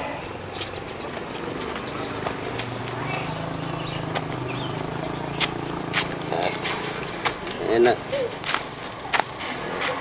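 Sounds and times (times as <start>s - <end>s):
low motor hum: 0.3s - 9.1s
footsteps in sandals on dirt: 0.3s - 10.0s.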